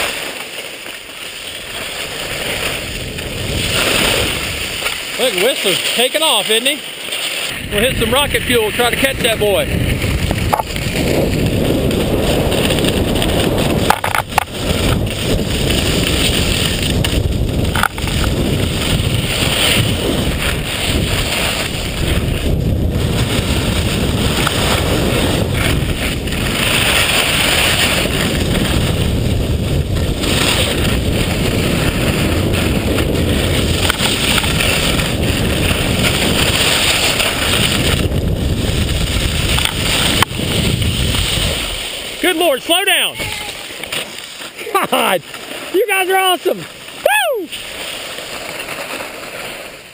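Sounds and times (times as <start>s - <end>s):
skis scraping over snow: 0.0s - 49.9s
wind buffeting microphone: 1.6s - 6.4s, 7.5s - 43.7s.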